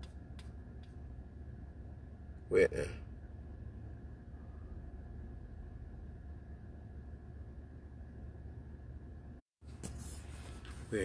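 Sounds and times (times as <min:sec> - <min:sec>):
vehicle interior hum: 0:00.0 - 0:09.4.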